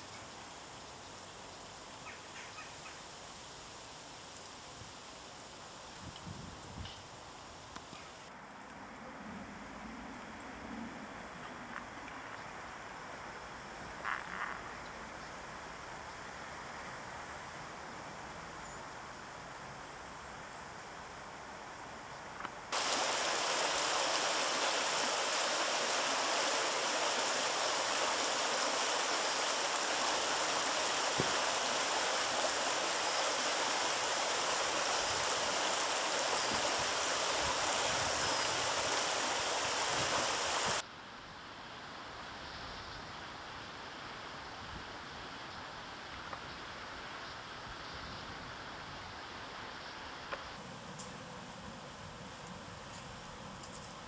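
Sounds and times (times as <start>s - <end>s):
stream running over stones: 22.7s - 40.8s.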